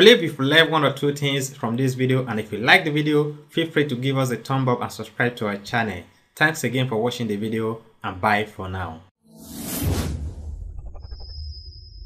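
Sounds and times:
whoosh sound effect: 9.3s - 12.0s
low rumble: 9.4s - 12.0s.

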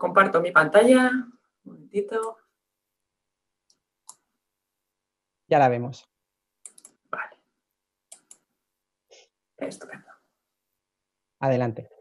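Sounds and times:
faint computer mouse clicks: 3.6s - 4.3s, 6.6s - 7.0s, 8.1s - 8.5s.

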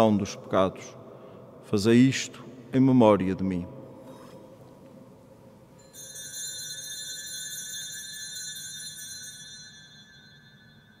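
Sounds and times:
altar bell ringing: 5.7s - 11.0s.

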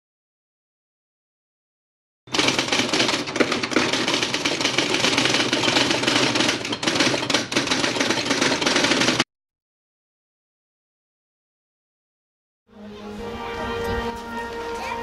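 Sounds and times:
typewriter key clatter: 2.3s - 9.2s.

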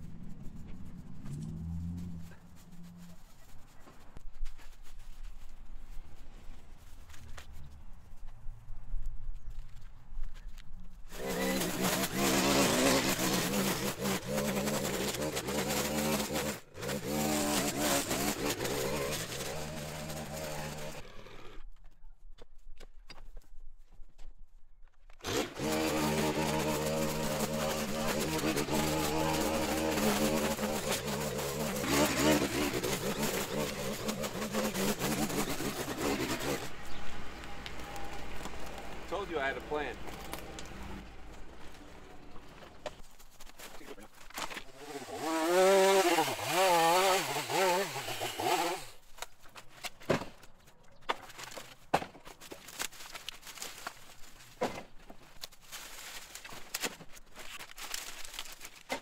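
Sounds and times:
string trimmer cutting grass: 11.1s - 21.7s, 25.2s - 42.3s, 43.4s - 49.3s.

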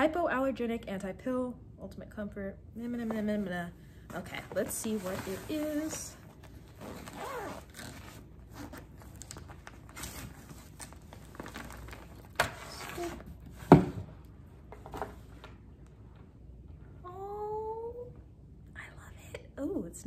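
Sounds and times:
plastic packaging crinkling: 6.6s - 13.2s.

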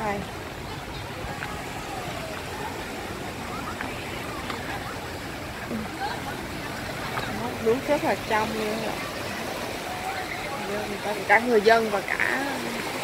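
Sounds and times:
faint voices of people: 0.0s - 13.0s
surf washing on sand: 0.0s - 13.0s.

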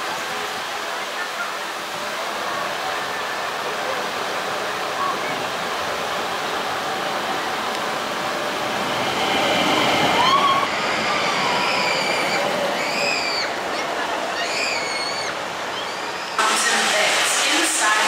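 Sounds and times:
roller coaster train rumbling: 0.0s - 18.0s.

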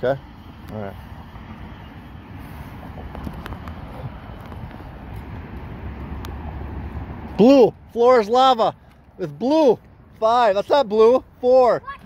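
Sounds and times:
footsteps on pavement: 0.6s - 12.0s
wind rumble on microphone: 1.1s - 7.4s.

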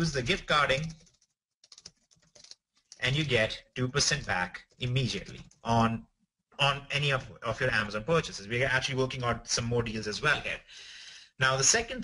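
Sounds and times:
computer keyboard typing: 0.6s - 3.0s, 4.1s - 5.6s.

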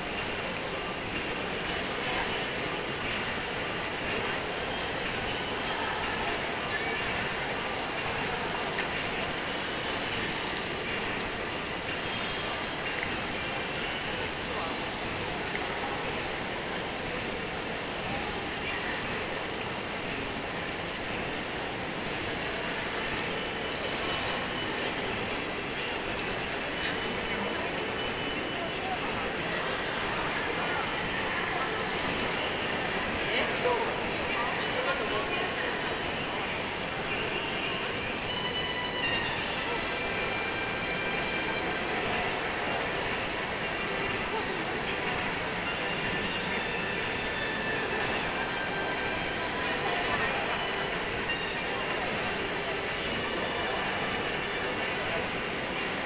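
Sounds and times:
indistinct murmuring voices: 0.0s - 56.0s
steady background rush: 0.0s - 56.0s.

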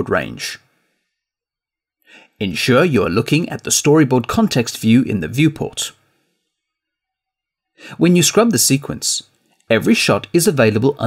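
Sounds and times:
man speaking: 0.0s - 0.7s, 2.4s - 6.0s, 7.8s - 11.0s
man breathing in: 2.0s - 2.4s.

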